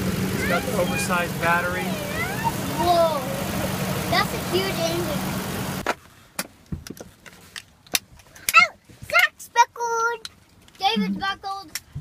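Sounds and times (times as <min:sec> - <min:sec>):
young children calling: 0:00.2 - 0:05.4.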